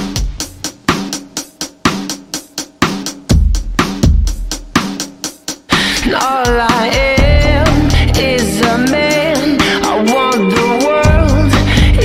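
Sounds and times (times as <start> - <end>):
drum kit beat: 0.0 - 12.0.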